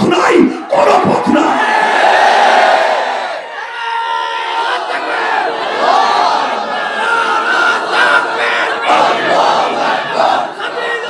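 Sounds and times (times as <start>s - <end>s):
crowd shouting a chant: 0.6s - 11.0s.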